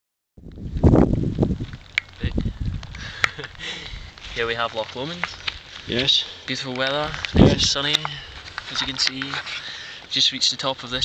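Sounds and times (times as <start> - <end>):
wind buffeting microphone: 0.4 - 9.0.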